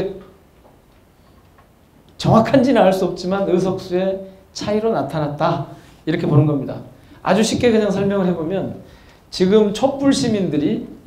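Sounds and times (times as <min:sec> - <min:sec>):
man speaking through a microphone: 0:02.2 - 0:11.0.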